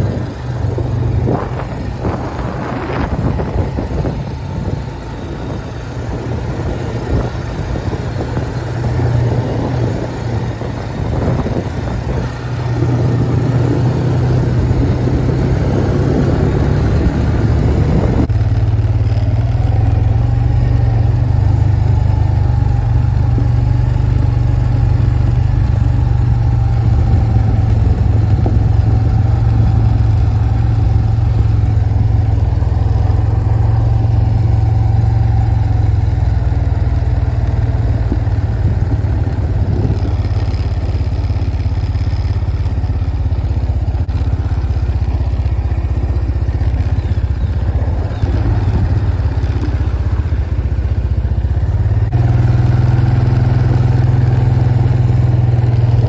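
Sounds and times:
atv engine running steadily: 0.0 - 56.0.

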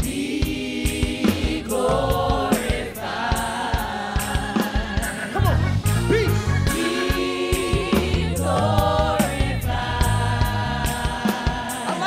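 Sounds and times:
lead vocalist singing: 0.0 - 5.6, 6.2 - 12.0
band with steady drum beat: 0.0 - 12.0
deep bass notes: 5.4 - 11.2.

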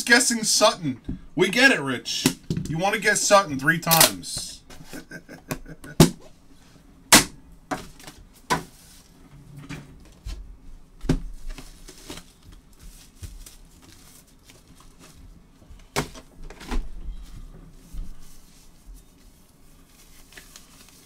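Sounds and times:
cardboard rustling: 11.2 - 21.0.

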